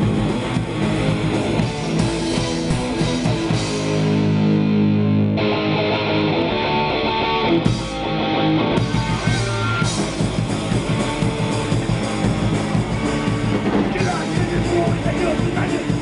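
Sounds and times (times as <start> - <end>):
drum kit: 0.0 - 6.1, 7.2 - 16.0
bass guitar: 0.0 - 16.0
distorted electric guitars: 0.0 - 16.0.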